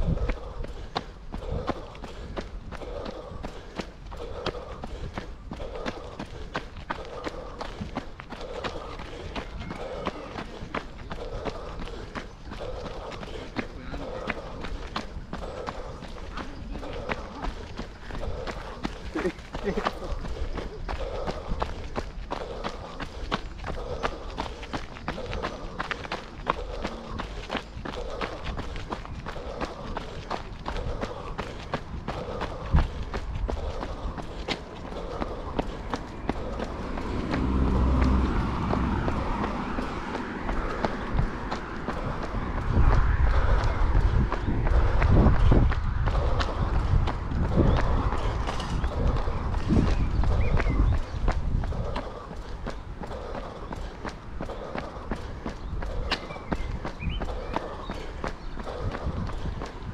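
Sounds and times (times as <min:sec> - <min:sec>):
road traffic rumble: 0:00.0 - 0:59.9
runner breathing: 0:00.0 - 0:59.9
running footsteps: 0:00.0 - 0:59.9.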